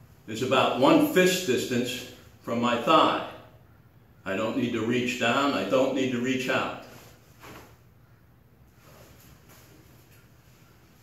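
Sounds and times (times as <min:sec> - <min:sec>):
cloth uniform rustling: 0:06.8 - 0:07.9, 0:08.7 - 0:11.0.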